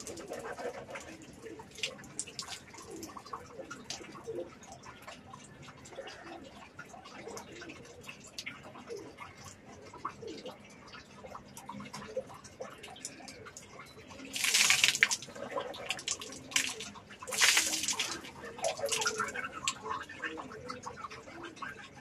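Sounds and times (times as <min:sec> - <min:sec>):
water spat out of mouth: 0:14.4 - 0:19.8.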